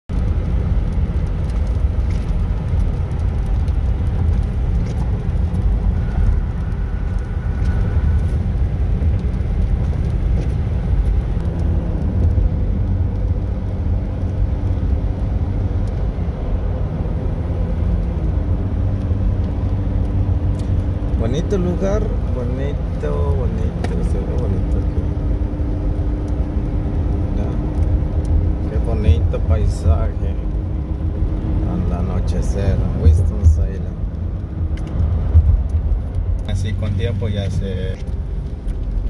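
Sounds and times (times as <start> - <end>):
car road and tyre rumble: 0.0 - 39.0.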